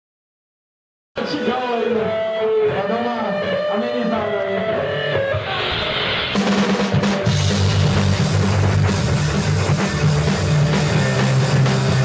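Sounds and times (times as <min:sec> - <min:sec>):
electric guitar bending notes: 0:01.2 - 0:12.0.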